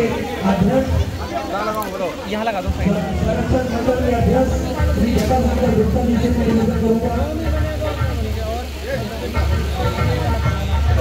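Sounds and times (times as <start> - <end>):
voices: 0.0 - 11.0
music over loudspeakers: 2.7 - 11.0.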